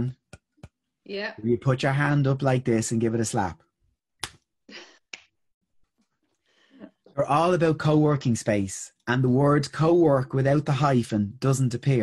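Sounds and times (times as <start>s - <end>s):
hand slap: 4.2s - 4.4s
breath: 6.3s - 6.9s.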